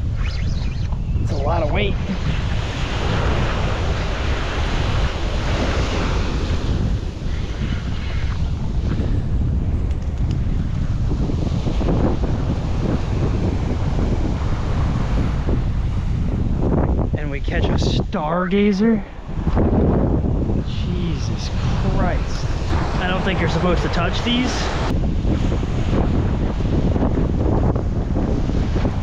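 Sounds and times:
wind buffeting microphone: 0:00.0 - 0:29.0
ocean surf on beach: 0:01.3 - 0:17.1, 0:18.6 - 0:29.0.

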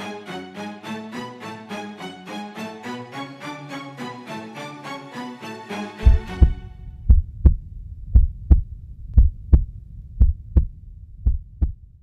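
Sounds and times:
heartbeat thumps: 0:06.0 - 0:12.0.

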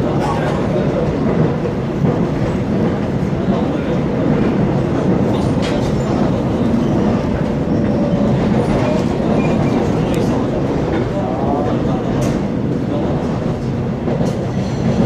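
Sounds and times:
train wheels rumbling on track: 0:00.0 - 0:15.0.

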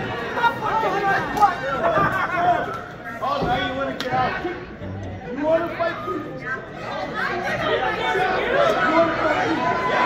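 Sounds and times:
spectators chattering and calling out: 0:00.0 - 0:10.0.

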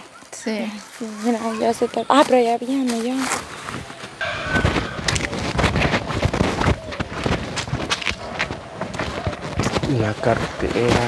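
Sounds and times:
low rumble: 0:04.2 - 0:06.5.

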